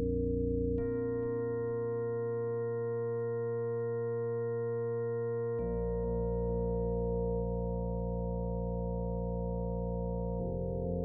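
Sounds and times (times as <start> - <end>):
held synthesizer chord: 0.0 - 11.0.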